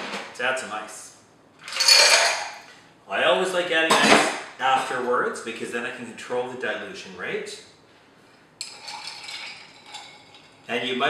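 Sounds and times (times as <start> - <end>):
ice cubes clattering into glass: 1.7 - 2.6, 8.6 - 10.5.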